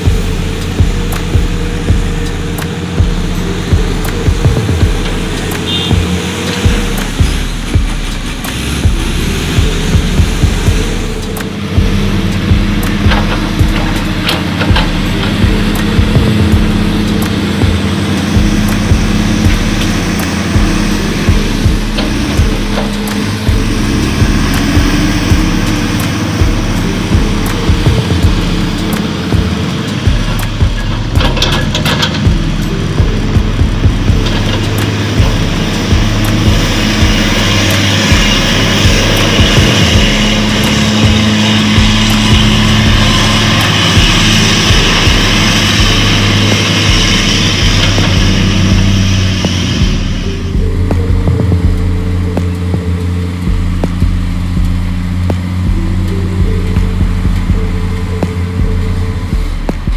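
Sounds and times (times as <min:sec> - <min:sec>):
background music: 0:00.0 - 0:59.9
diesel engines running: 0:00.0 - 0:59.9.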